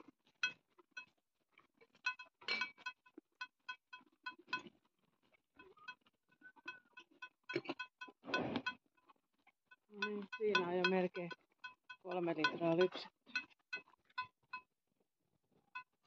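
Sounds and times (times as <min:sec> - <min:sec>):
light metallic clinks: 0:02.0 - 0:04.7, 0:09.9 - 0:14.7.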